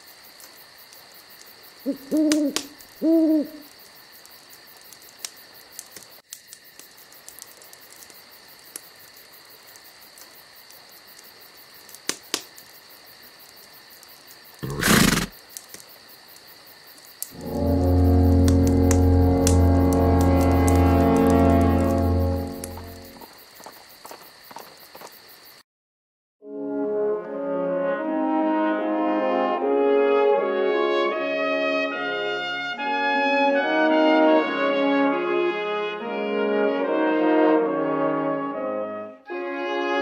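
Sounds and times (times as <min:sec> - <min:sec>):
horse hooves clip-clopping: 0:20.2 - 0:25.2.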